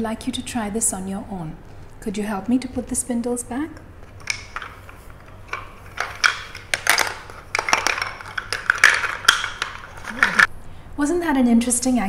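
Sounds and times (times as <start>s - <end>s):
wooden spindles clattering: 4.1s - 10.5s.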